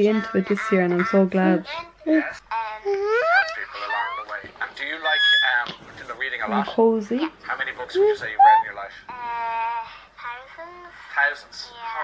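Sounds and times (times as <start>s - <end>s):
television voices: 0.0s - 12.0s
baby squealing: 2.8s - 4.4s, 5.0s - 5.7s, 7.9s - 8.8s.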